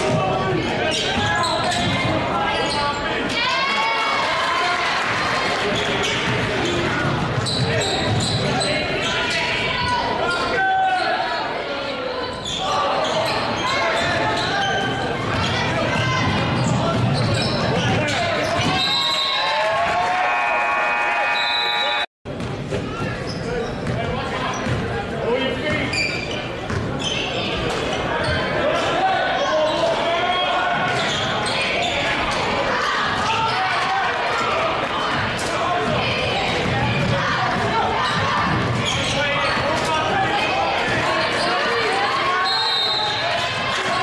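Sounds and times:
echoing voices: 26.5s - 44.0s.

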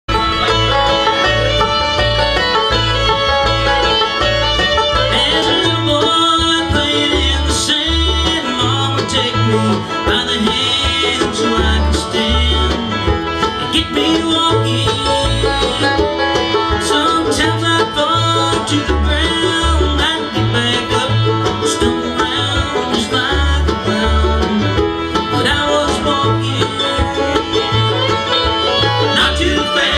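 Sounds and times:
acoustic guitars: 0.1s - 29.9s
banjo: 0.1s - 29.9s
fiddle: 0.1s - 29.9s
mandolin: 0.1s - 29.9s.

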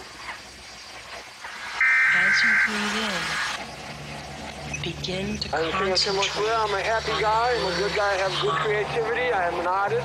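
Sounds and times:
faint hiss: 0.0s - 4.0s
high electronic beep tone: 1.8s - 3.6s.

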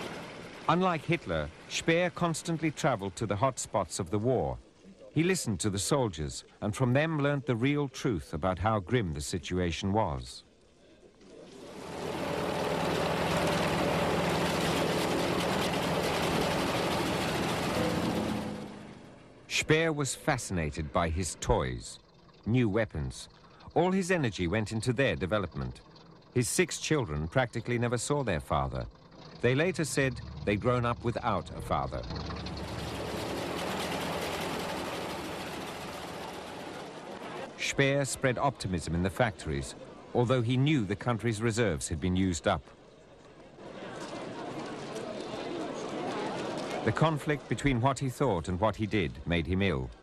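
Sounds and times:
propeller aircraft engine drone: 0.0s - 3.5s, 11.4s - 37.7s
machinery rattling: 11.5s - 19.7s, 21.2s - 37.7s.

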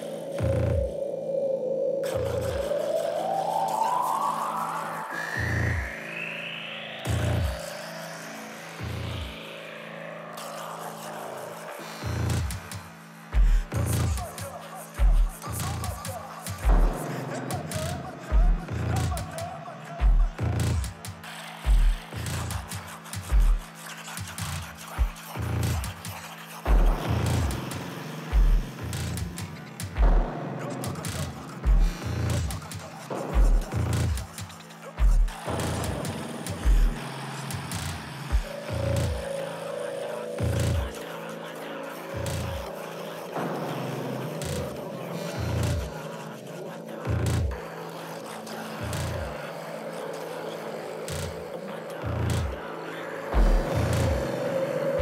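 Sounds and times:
techno track: 0.0s - 1.3s, 2.0s - 55.0s
deep bass booms: 16.7s - 17.0s, 18.3s - 19.2s, 26.7s - 27.6s, 30.0s - 30.4s, 31.7s - 32.5s, 53.4s - 54.2s
deep bass hits: 26.7s - 27.6s, 30.0s - 30.4s.

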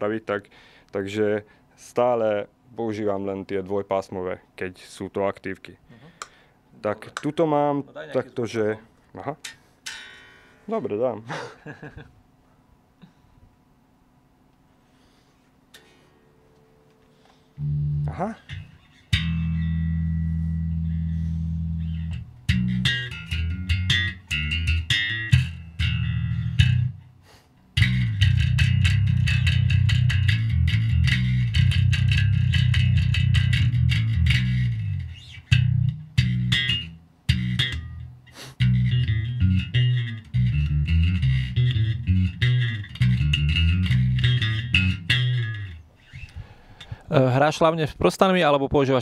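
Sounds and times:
electric bass riffing: 17.5s - 27.1s, 27.7s - 47.1s.

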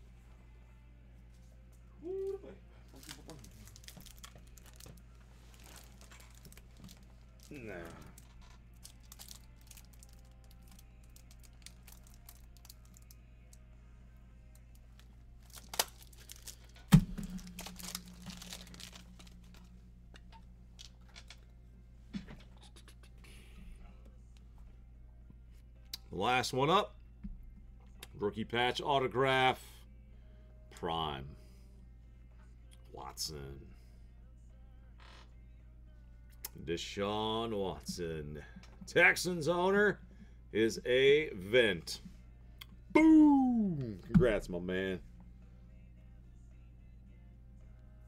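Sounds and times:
foil wrappers crinkling and tearing: 2.9s - 13.2s, 15.4s - 19.7s
small clicks and crackles: 2.9s - 13.2s.

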